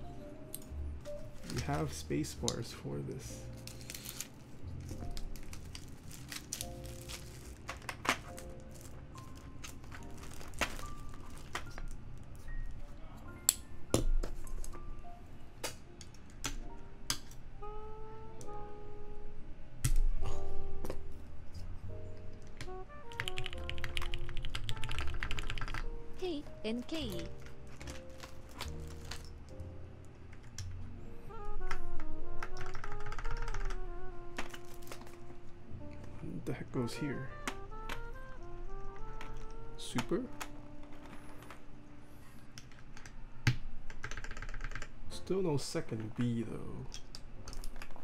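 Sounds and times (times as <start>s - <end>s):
background music: 0.0s - 48.0s
rapid keyboard typing: 22.4s - 25.9s, 31.5s - 35.0s, 42.6s - 45.0s
plastic keycaps clicking: 22.5s - 25.9s.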